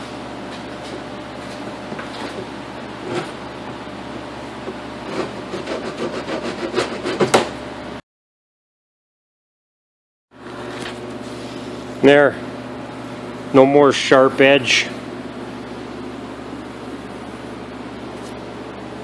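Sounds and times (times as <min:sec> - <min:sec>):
hand file rasping on plastic: 0:05.0 - 0:07.4.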